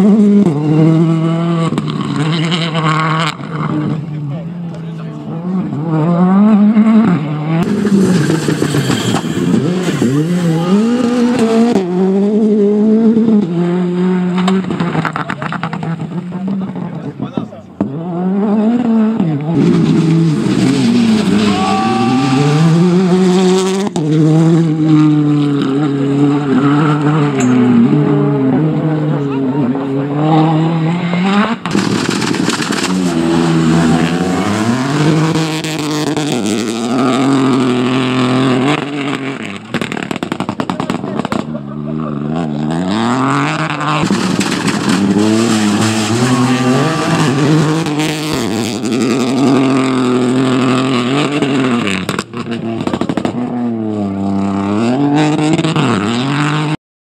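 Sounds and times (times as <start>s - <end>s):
rally car engines revving: 0.0s - 56.8s.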